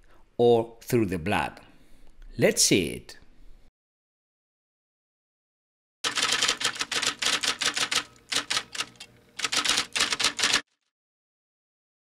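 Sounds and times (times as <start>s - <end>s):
typewriter key clacks: 6.1s - 10.6s.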